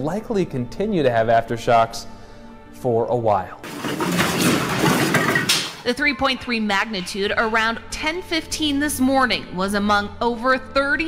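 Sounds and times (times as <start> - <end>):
house rumbling and rattling: 3.6 - 6.0.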